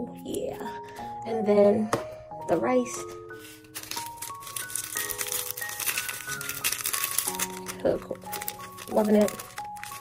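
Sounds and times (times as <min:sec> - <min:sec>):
background music of held notes: 0:00.0 - 0:10.0
plastic packet crinkling and rattling: 0:03.7 - 0:10.0.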